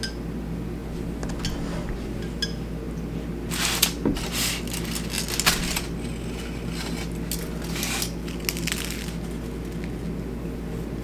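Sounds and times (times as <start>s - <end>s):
aluminium foil crinkling: 3.5s - 10.0s.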